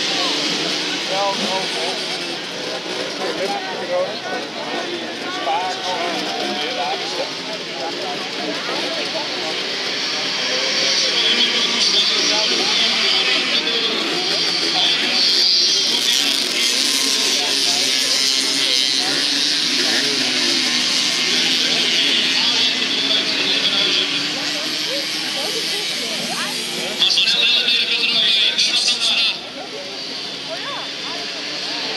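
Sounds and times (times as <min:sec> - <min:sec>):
moped engines buzzing and revving: 0:00.0 - 0:31.9.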